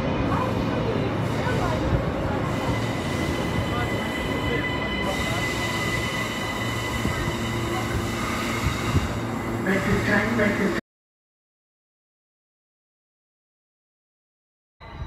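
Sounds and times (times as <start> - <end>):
train wheels rumbling: 0.0 - 10.8.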